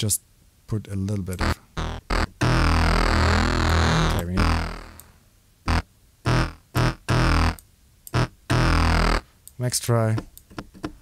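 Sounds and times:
synthesizer notes: 1.4s - 5.1s, 5.7s - 7.6s, 8.2s - 9.2s.

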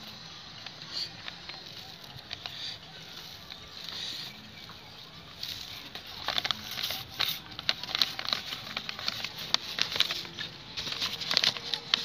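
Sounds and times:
fingers crumbling dry seed heads: 0.0s - 12.0s.

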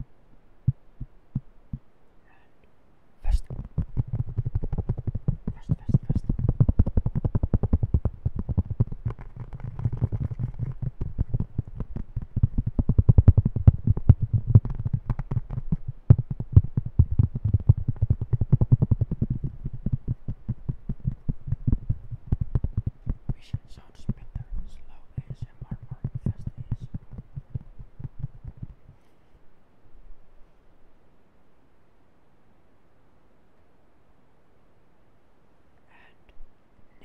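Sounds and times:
fingertips tapping on plastic disc: 3.4s - 29.0s.

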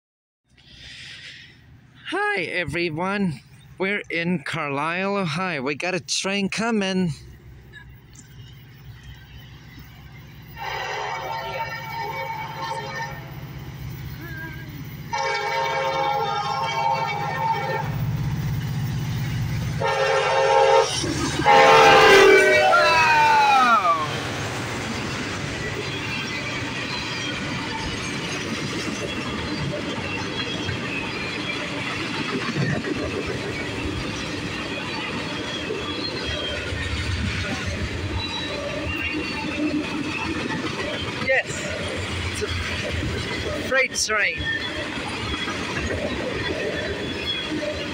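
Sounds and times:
locomotive air horn blasts: 10.6s - 13.4s, 15.1s - 18.0s, 19.8s - 22.9s
freight cars clattering on rails: 23.2s - 47.9s.

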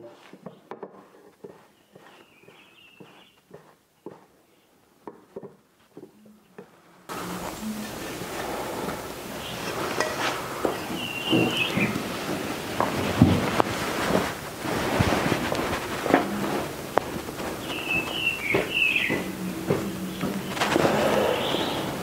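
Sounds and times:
steady hiss: 5.6s - 22.0s.

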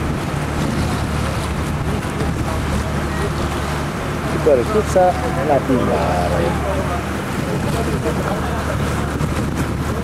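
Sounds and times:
boat engine droning: 0.0s - 10.0s
water wash: 0.0s - 10.0s
wind buffeting microphone: 0.0s - 10.0s.

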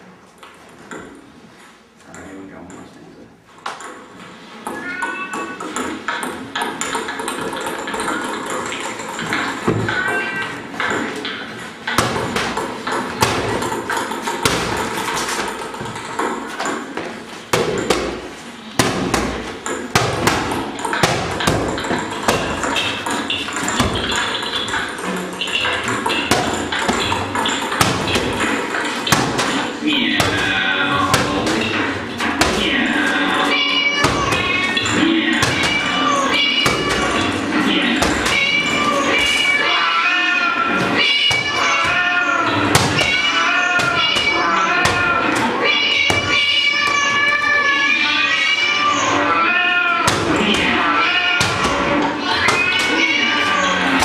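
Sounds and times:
thumps and sharp knocks: 3.6s - 40.0s, 40.6s - 47.5s, 50.0s - 54.0s
voices: 17.5s - 54.0s.

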